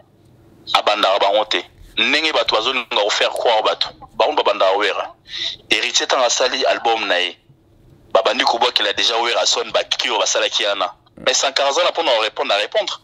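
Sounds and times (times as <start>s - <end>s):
person talking: 0.7s - 7.4s.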